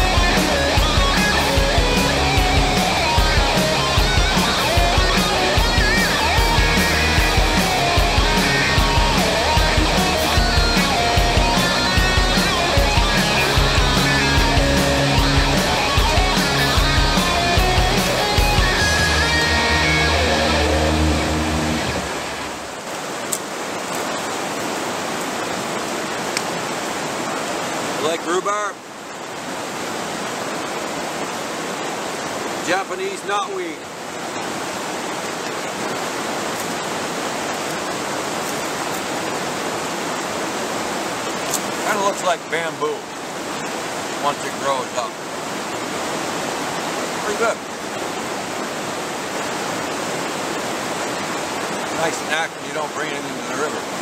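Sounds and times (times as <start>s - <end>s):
guitar background music: 0.0s - 22.2s
rushing river: 0.0s - 54.0s.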